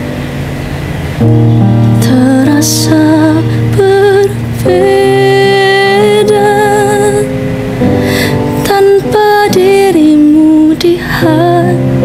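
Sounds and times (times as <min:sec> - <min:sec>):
electronic keyboard chords: 0:00.0 - 0:12.0.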